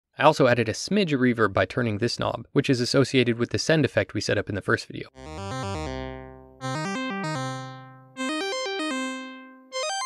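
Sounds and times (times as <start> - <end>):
synth lead playing quick notes: 5.2 - 10.0.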